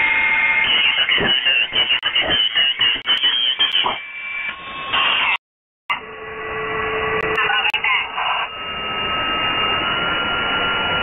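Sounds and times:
radio static hiss: 0.6 - 4.0, 7.2 - 8.5
steady low whistle: 6.0 - 11.0.

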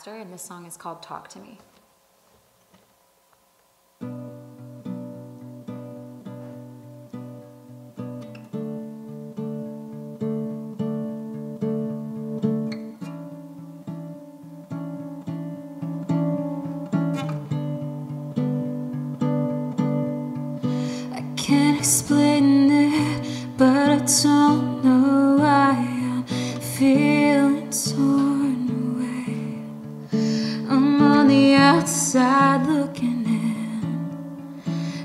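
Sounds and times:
acoustic guitar chords: 4.0 - 35.0.

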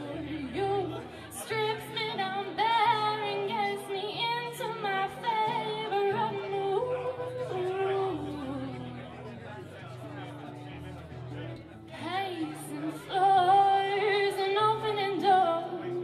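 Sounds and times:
woman singing: 0.0 - 9.1, 12.0 - 16.0
acoustic guitar chords: 0.0 - 16.0.

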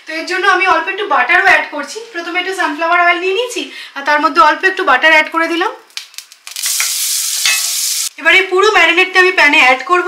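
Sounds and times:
butter sizzling in a pan: 6.0 - 8.1.

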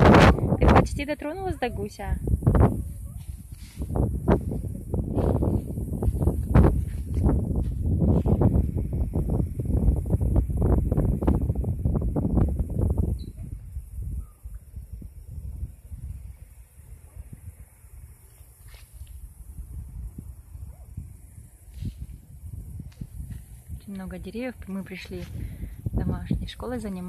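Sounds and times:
faint hiss: 0.0 - 27.0
wind buffeting microphone: 0.0 - 27.0.

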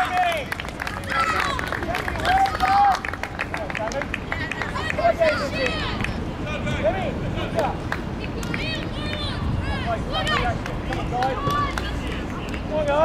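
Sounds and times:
players shouting: 0.0 - 3.2, 4.4 - 6.8, 8.5 - 13.0
general game noise: 0.0 - 13.0.

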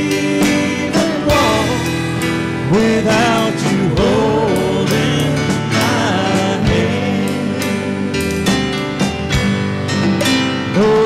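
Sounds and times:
people singing: 0.0 - 9.2, 10.7 - 11.0
live worship band playing: 0.0 - 11.0.

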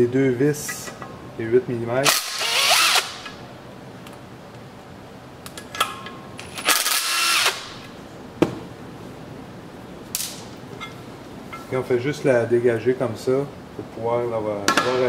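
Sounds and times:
impact driver spinning up: 2.1 - 3.4, 6.5 - 7.8.

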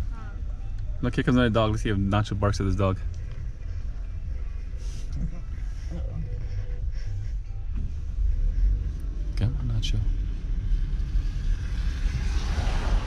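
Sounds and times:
car engine rumble inside cabin: 0.0 - 13.0.

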